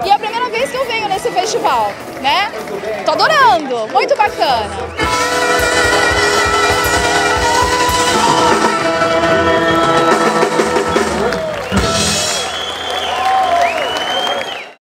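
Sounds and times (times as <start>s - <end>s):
band music: 0.0s - 14.4s.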